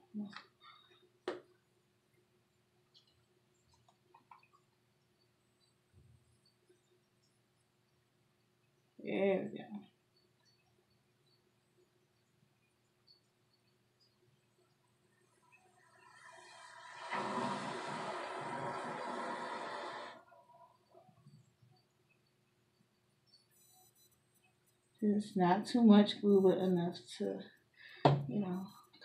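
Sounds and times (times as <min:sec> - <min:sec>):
glue hissing from squeeze bottle: 0:16.0 - 0:20.2.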